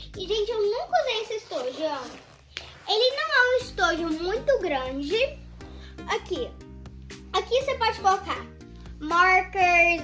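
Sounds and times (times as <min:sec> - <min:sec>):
girl speaking: 0:00.0 - 0:06.6, 0:07.2 - 0:10.0.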